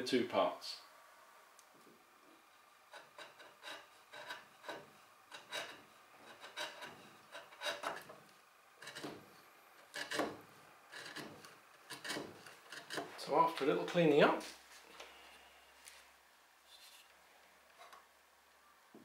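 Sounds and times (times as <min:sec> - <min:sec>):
chisel scraping wood: 0:02.9 - 0:13.3.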